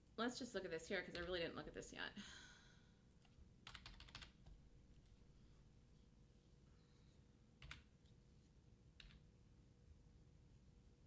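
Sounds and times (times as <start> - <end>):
computer keyboard clicks: 1.1 - 1.4, 3.2 - 4.6, 7.6 - 7.9, 9.0 - 9.2.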